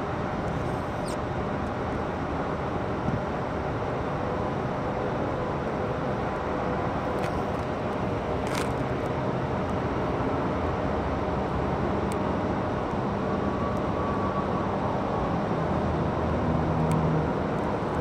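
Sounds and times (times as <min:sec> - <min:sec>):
road traffic: 0:00.0 - 0:18.0.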